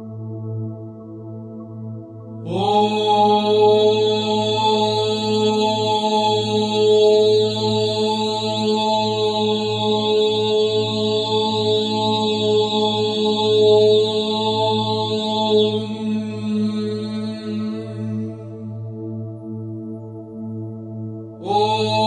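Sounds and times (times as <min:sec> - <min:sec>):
person chanting held syllable: 0:21.4 - 0:22.0.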